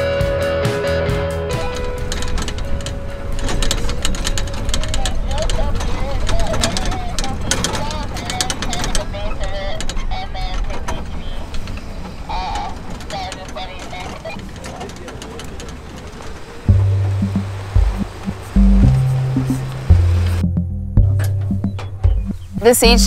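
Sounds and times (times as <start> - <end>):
truck engine and tyre rumble: 0.0 - 23.0
rattles and knocks over bumps: 1.5 - 22.6.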